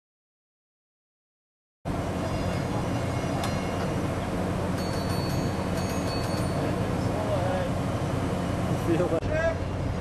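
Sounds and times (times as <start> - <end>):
ship machinery running: 1.9 - 10.0.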